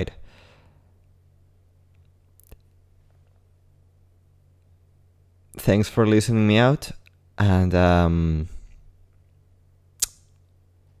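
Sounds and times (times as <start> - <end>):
faint room hum: 0.0 - 11.0
sharp click: 10.0 - 10.4.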